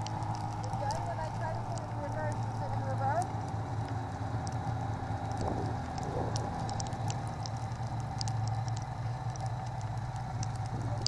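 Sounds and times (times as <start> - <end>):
light ticks: 0.0 - 11.0
snowmobile engine running: 0.0 - 11.0.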